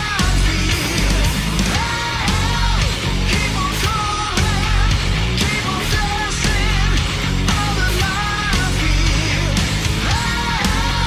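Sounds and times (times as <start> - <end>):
distorted electric guitars: 0.0 - 11.0
drums: 0.0 - 11.0
held melody line: 0.0 - 11.0.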